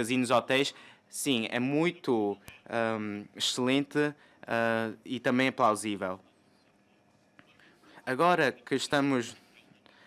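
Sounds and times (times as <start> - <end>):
man speaking: 0.0 - 6.4, 8.0 - 9.7.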